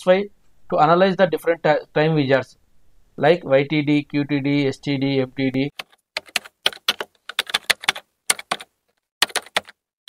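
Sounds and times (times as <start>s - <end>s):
keyboard typing clicks: 5.8s - 8.6s, 9.2s - 9.8s.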